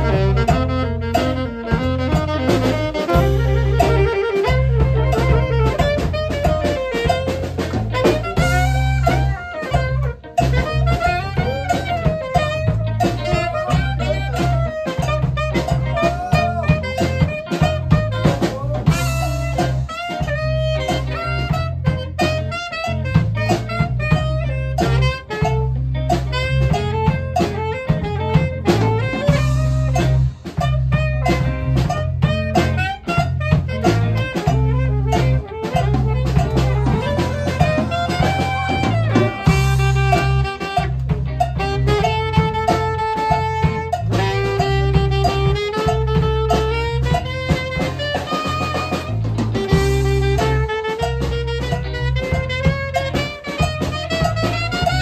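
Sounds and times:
alto saxophone solo: 0:00.0 - 0:55.0
blues-rock band playing: 0:00.0 - 0:55.0.

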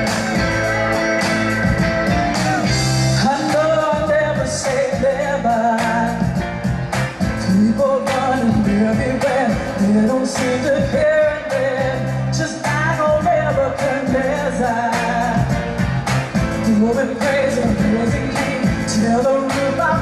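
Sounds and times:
amplified band playing: 0:00.0 - 0:20.0.

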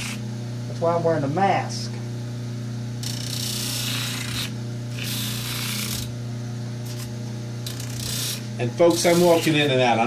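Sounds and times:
bench grinder grinding rubber: 0:00.0 - 0:00.2, 0:03.0 - 0:06.2, 0:06.8 - 0:10.0
grinder motor hum: 0:00.0 - 0:10.0.

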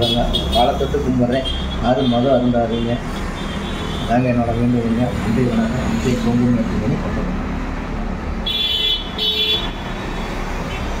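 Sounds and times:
street traffic: 0:00.0 - 0:11.0
vehicle horn toot: 0:08.5 - 0:09.8.

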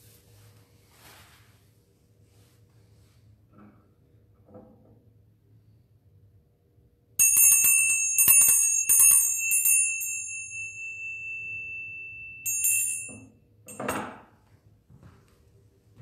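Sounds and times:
small bells shaken: 0:07.2 - 0:13.2.

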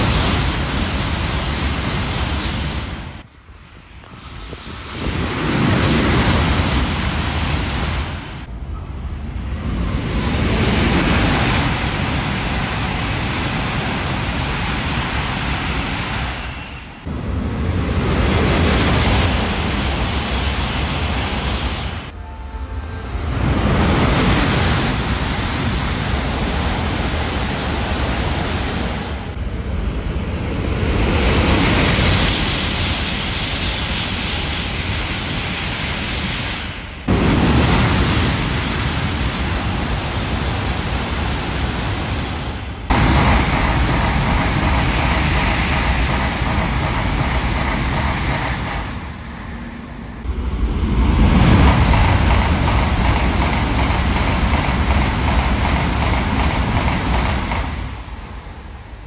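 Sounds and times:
high-speed trains passing: 0:00.0 - 0:59.0.

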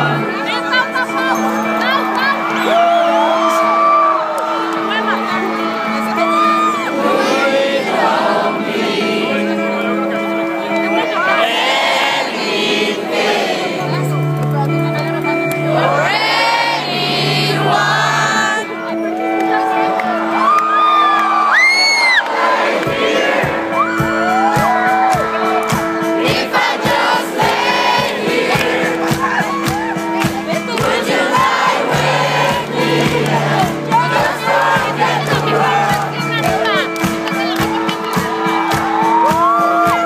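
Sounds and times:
live rock band playing: 0:00.0 - 0:11.4, 0:13.8 - 0:22.2, 0:23.0 - 0:40.0
audience whooping: 0:02.2 - 0:04.8, 0:19.6 - 0:22.3, 0:38.2 - 0:40.0
audience singing along: 0:06.6 - 0:14.1, 0:15.6 - 0:18.8, 0:21.8 - 0:24.2, 0:25.8 - 0:36.8
low drum beats: 0:22.9 - 0:40.0.

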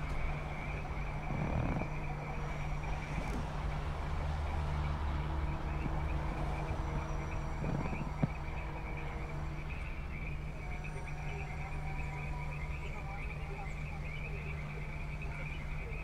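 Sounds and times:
frogs calling in chorus: 0:00.0 - 0:16.0
low steady hum: 0:00.0 - 0:16.0.

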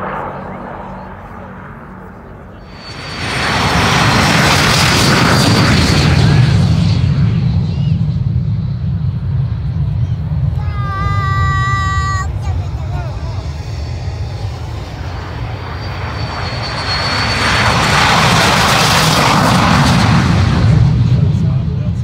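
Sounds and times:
high turbine whine: 0:00.0 - 0:21.9
jet engine noise: 0:00.0 - 0:22.0.

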